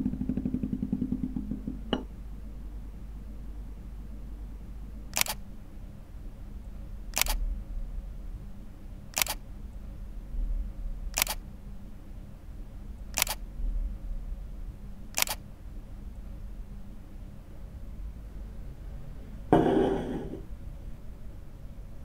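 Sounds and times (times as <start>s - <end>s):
faint low hum: 0.0s - 22.0s
camera shutter clicking: 5.2s - 5.4s, 7.2s - 7.4s, 9.2s - 9.4s, 11.2s - 11.4s, 13.2s - 13.4s, 15.2s - 15.4s.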